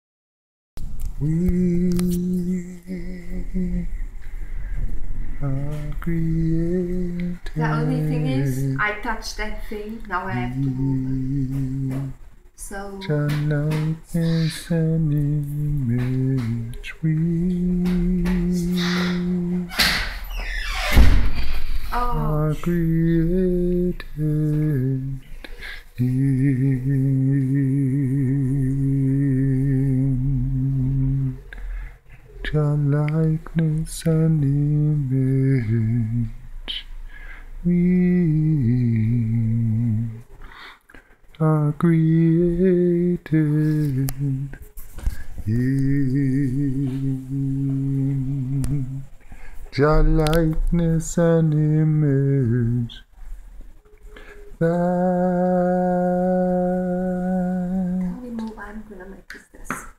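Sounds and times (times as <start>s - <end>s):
man singing unaccompanied: 1.1s - 4.6s, 5.2s - 20.6s, 22.0s - 31.6s, 32.3s - 40.4s, 41.3s - 53.2s, 54.2s - 58.4s.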